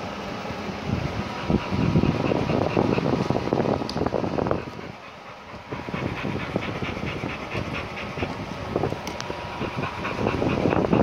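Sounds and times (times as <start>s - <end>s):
dog panting: 1.0s - 11.0s.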